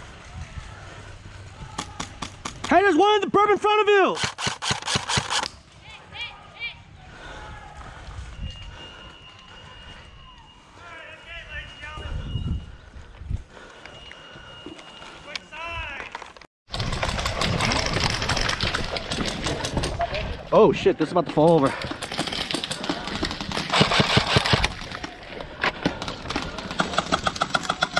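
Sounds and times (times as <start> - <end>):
rapid rattling and clicking: 21.4 - 24.8, 25.8 - 27.9.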